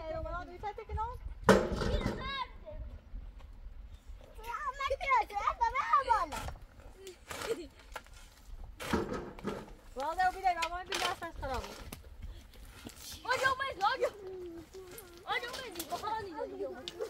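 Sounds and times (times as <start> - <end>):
shovel scraping stony earth: 6.0 - 13.8.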